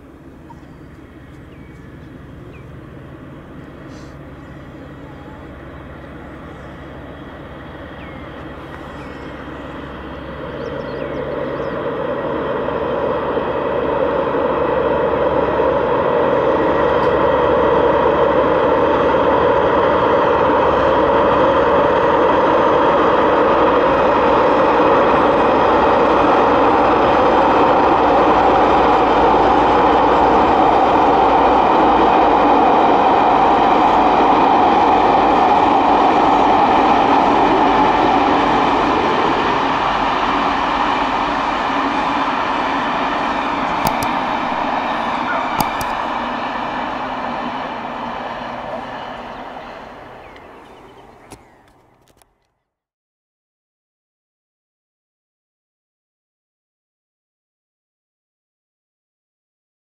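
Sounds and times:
diesel locomotive hauling train: 0.0 - 52.8.

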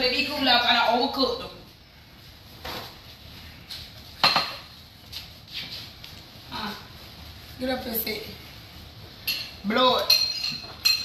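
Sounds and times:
dishes and utensils clinking: 4.2 - 4.7, 9.2 - 11.0.

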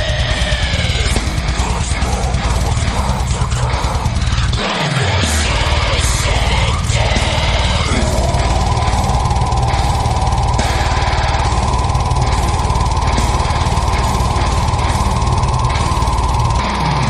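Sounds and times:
distorted guitars: 0.0 - 17.0
fast drumming and cymbals: 0.0 - 17.0.

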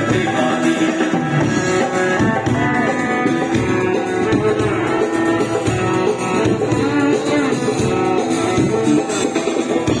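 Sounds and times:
acoustic guitar: 0.0 - 10.0
electric bass: 0.0 - 10.0
hand drums: 0.0 - 10.0
violin: 0.0 - 10.0.

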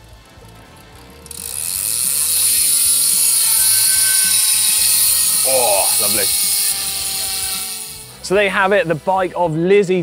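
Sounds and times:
bicycle freehub ratcheting buzz: 0.0 - 9.4.

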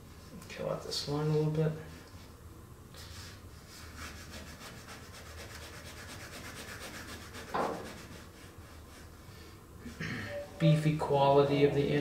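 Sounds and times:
pencil scratching on paper: 3.8 - 9.0.

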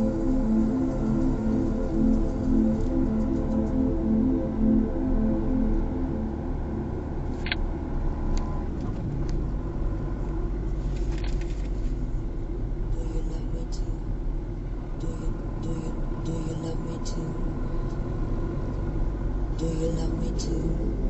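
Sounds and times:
music: 0.0 - 8.6
road and tyre rumble inside car: 0.0 - 21.0.

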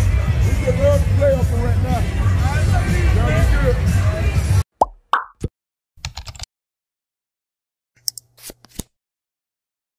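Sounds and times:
music: 0.0 - 4.6
street crowd talking: 0.0 - 4.6
cartoon pop sound effects: 4.8 - 5.5.

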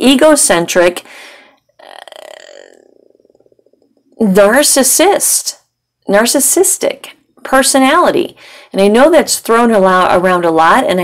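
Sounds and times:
woman hesitating with vocal fry: 1.8 - 3.8.

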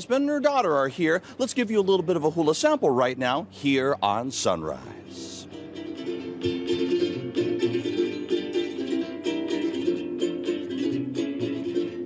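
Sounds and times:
strummed ukulele chords: 5.0 - 12.0.

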